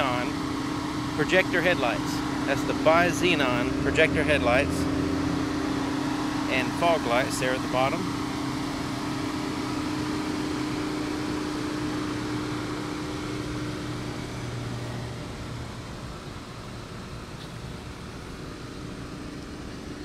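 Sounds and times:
low steady tones: 0.0 - 20.0
mechanical hum: 0.0 - 20.0
outdoor background noise: 0.0 - 20.0.

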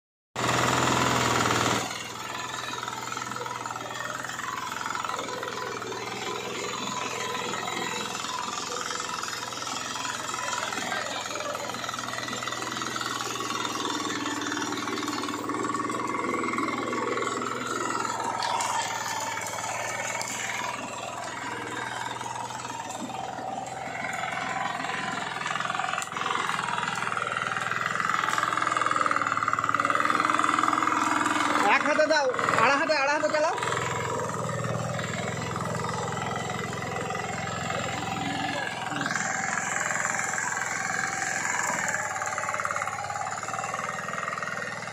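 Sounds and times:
small engine running: 0.4 - 44.9.

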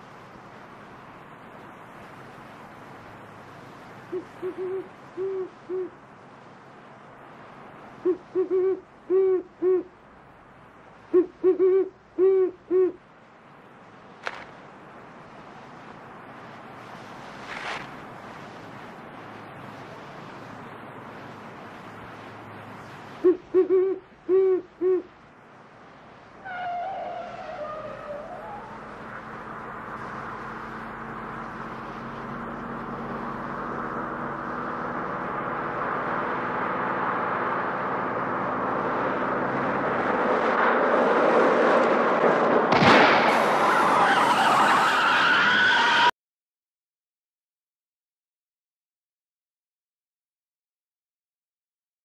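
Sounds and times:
owl hooting: 4.1 - 6.0, 8.0 - 9.9, 11.1 - 13.0, 23.2 - 25.1
car approaching: 25.1 - 46.1.

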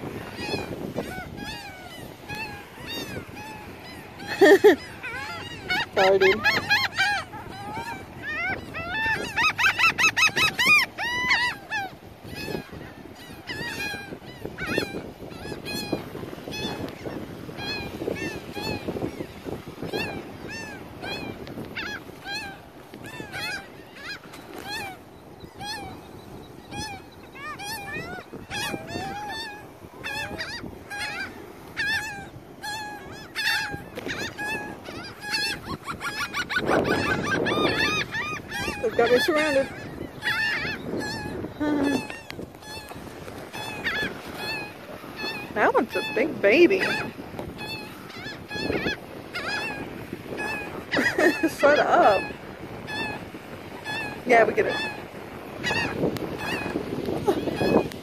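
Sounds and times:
gulls calling: 0.0 - 58.0.

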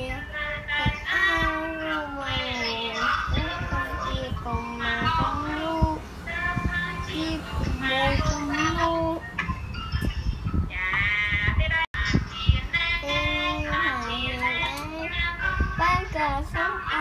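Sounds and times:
boy singing: 0.0 - 9.3, 10.0 - 17.0.

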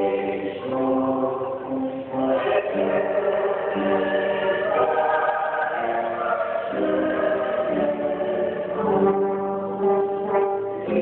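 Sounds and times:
mixed choir singing chords: 0.0 - 11.0.

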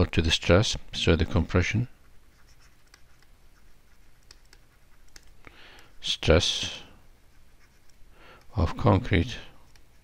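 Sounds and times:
stylus clicking on tablet screen: 4.2 - 5.9.

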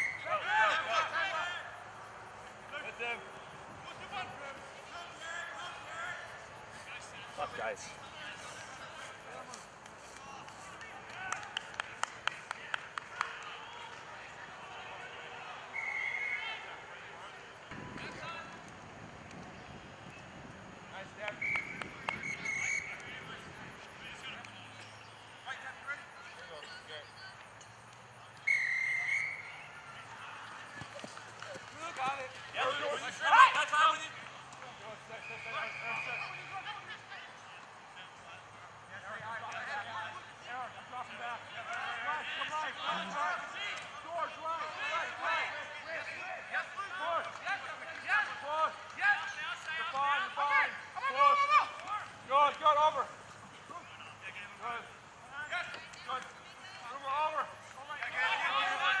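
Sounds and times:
referee's whistle blasts: 0.0 - 0.4, 15.7 - 16.6, 21.4 - 23.0, 28.4 - 29.6
distant shouts of players: 0.0 - 11.8, 12.6 - 18.6, 28.3 - 37.4
people shouting: 49.8 - 53.0.

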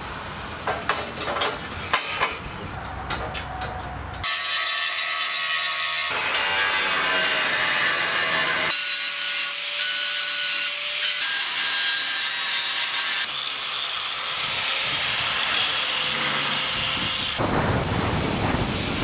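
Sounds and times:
angle grinders grinding steel: 1.9 - 17.4.

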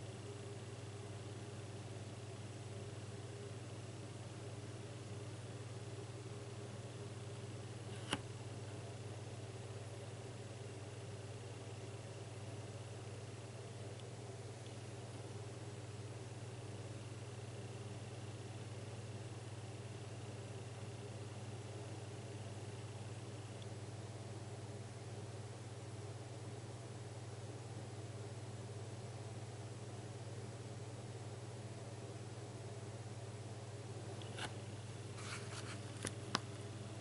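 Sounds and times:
faint steady low hum: 0.0 - 37.0.

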